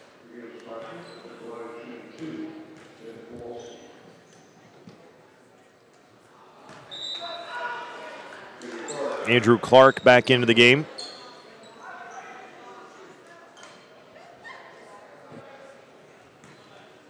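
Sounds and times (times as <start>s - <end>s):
indistinct voices echoing: 9.2s - 10.9s.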